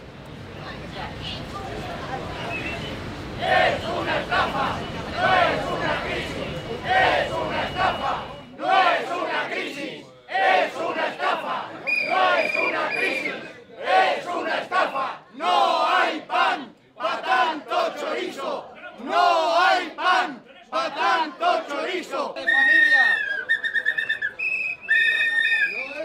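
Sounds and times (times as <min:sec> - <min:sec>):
crowd shouting slogans: 0:01.0 - 0:22.4.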